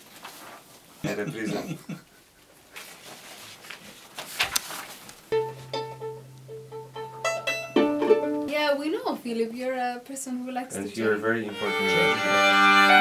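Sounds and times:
sheet music handling: 0.0s - 1.0s, 2.7s - 8.5s
string quartet playing: 5.4s - 8.5s, 10.8s - 13.0s.

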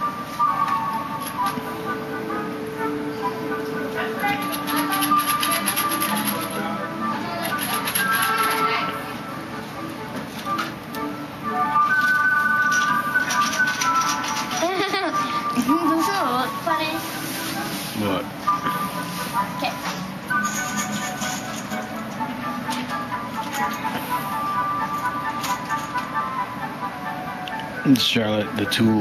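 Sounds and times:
background music: 0.0s - 29.0s
metal fasteners rattling in packages: 4.3s - 6.6s.

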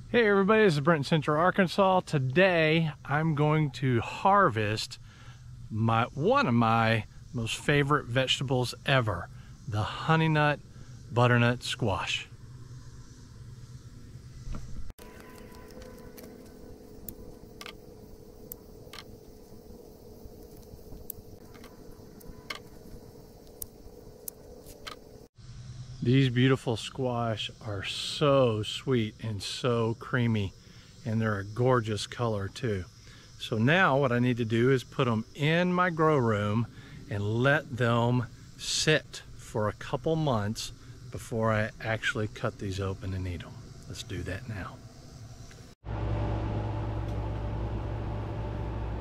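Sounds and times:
faint steady hum: 0.0s - 49.0s
machine humming: 45.4s - 49.0s.

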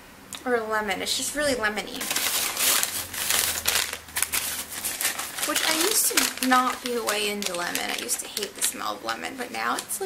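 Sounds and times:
paper bag crinkling: 2.0s - 10.0s.

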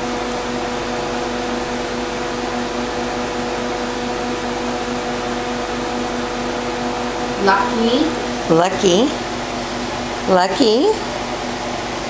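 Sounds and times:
motor humming with hiss: 0.0s - 12.0s.

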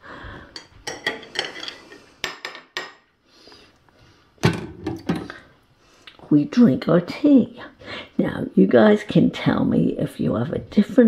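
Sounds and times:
spoon and dishes clinking in sink: 0.5s - 3.1s, 4.4s - 5.4s.

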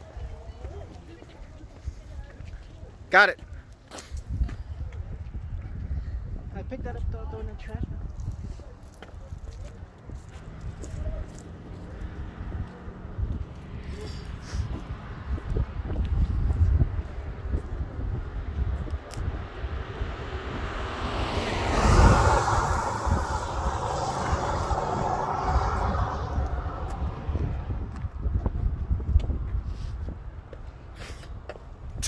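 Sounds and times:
wind rumble on microphone: 4.1s - 32.0s
car driving past: 10.2s - 28.4s.

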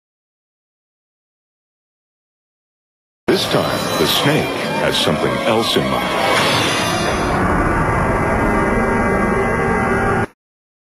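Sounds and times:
rumbling drone: 3.3s - 10.3s.

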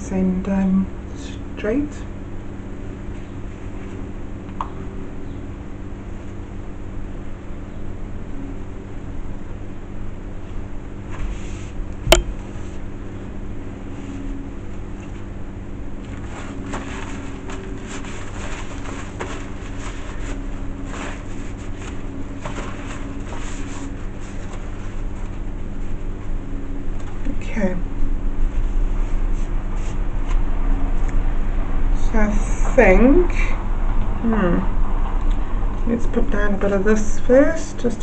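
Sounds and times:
low mechanical hum: 0.0s - 38.0s
sharp click: 12.1s - 12.3s
paper towels rustling: 16.0s - 26.3s.

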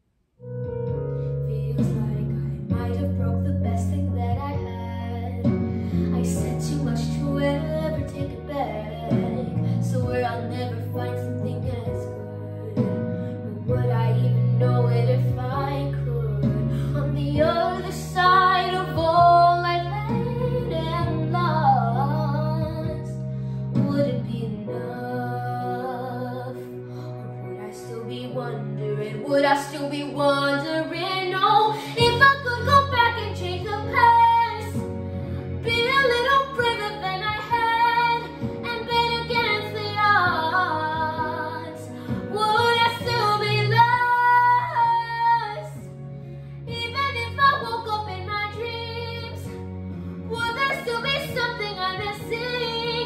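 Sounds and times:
soft instrumental backing track: 0.4s - 53.0s
girl singing pop ballad: 0.6s - 53.0s.

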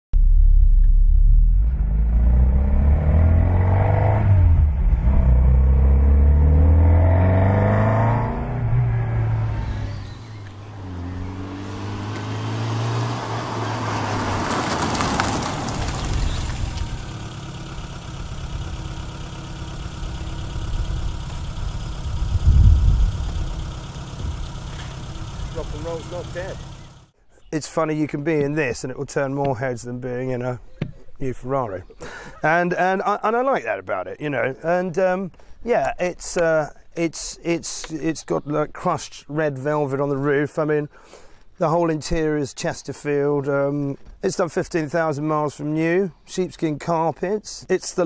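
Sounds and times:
loud thump: 0.2s - 2.0s
car engine revving: 0.2s - 27.1s
car passing on gravel: 6.4s - 27.1s.

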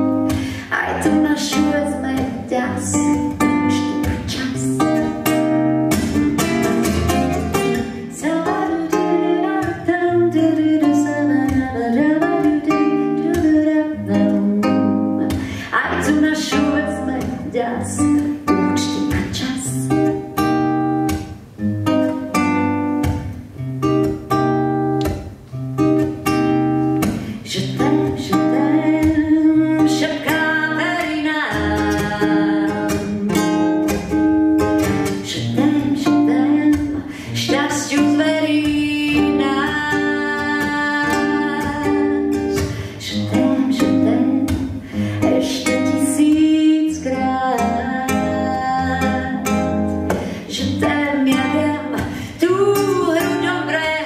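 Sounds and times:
woman singing a ballad: 0.0s - 5.4s, 6.9s - 20.4s, 27.0s - 34.2s, 34.8s - 54.0s
acoustic guitar: 0.0s - 54.0s.

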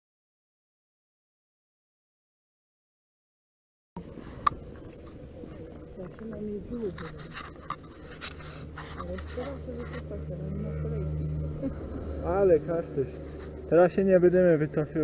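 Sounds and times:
faint indistinct voices: 4.0s - 15.0s
low steady hum: 4.0s - 15.0s.

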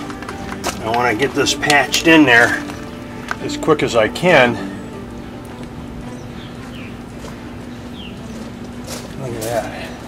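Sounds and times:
steady low hum: 2.2s - 10.0s
bird chirps: 4.6s - 8.7s.

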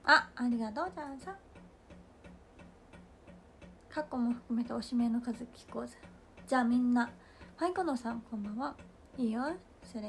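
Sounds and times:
air conditioner ticking: 0.0s - 10.0s.

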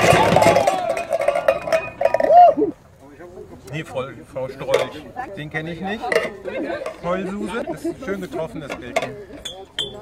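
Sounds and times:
tin cans clattering: 0.0s - 2.4s.

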